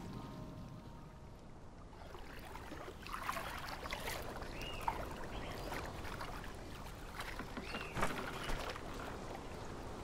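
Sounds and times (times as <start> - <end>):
water lapping against boat hull: 2.0 - 9.4.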